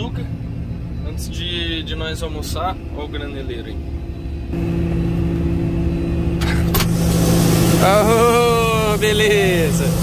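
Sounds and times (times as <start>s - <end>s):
combine harvester running: 0.0s - 10.0s.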